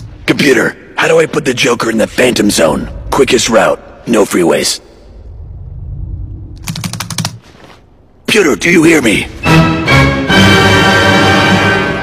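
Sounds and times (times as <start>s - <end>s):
low rumble: 4.8s - 7.0s.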